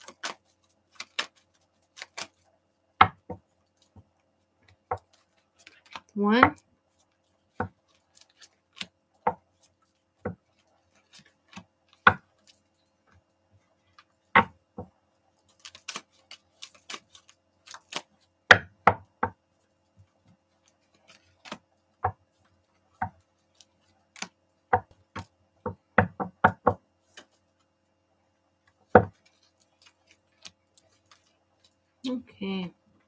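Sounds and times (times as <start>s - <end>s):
cards clicking and tapping: 0.0s - 2.4s, 3.0s - 6.6s, 7.5s - 13.2s, 15.5s - 19.4s, 20.0s - 27.4s
cards knocking: 24.2s - 27.4s.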